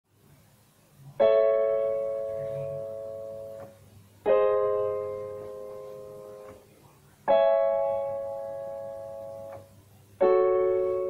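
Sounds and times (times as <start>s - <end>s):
electronic piano chords: 1.0s - 11.0s.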